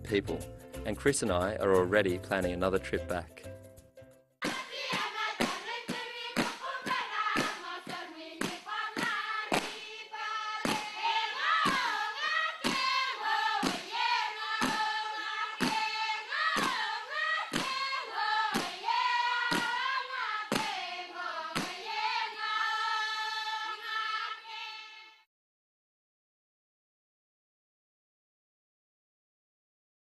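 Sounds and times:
rhythmic hand claps: 4.4s - 23.9s
group of voices singing a chant: 4.4s - 25.3s.

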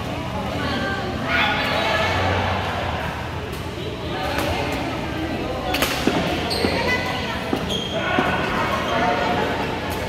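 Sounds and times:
people talking: 0.0s - 10.0s
rackets hitting shuttlecock: 5.7s - 6.8s.

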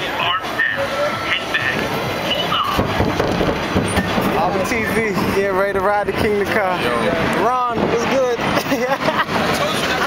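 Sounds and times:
riders' voices: 0.0s - 2.9s
roller coaster wheels rumbling: 0.0s - 10.0s.

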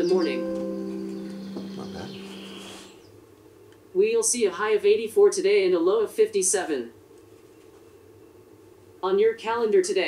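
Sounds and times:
held electronic chord: 0.0s - 3.0s.

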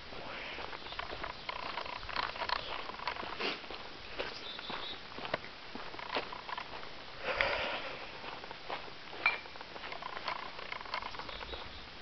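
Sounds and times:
rustling crunch: 0.0s - 11.8s
footsteps crunching on gravel: 0.1s - 11.8s.

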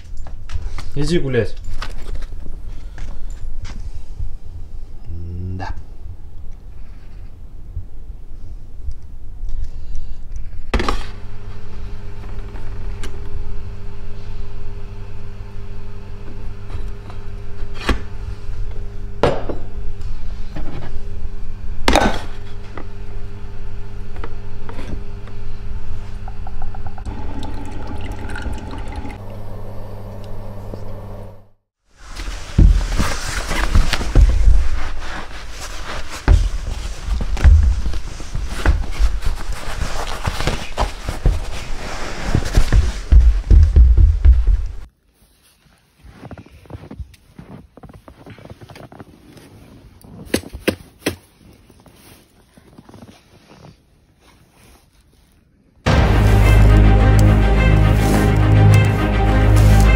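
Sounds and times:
espresso machine humming: 25.7s - 31.5s
coffee streaming into cup: 26.3s - 30.4s.

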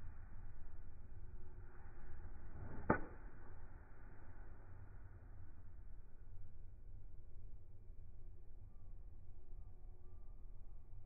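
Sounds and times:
golf club striking ball: 2.7s - 3.2s.

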